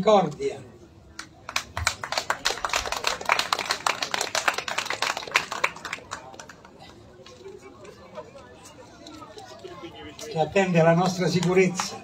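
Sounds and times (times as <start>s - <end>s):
audience applauding: 1.5s - 6.6s.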